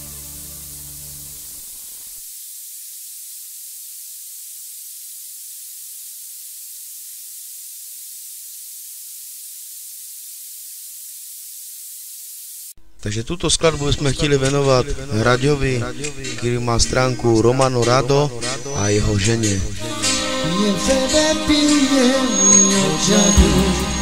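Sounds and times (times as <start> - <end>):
high-pitched recording hiss: 0.0 - 24.0
song ending: 19.8 - 24.0.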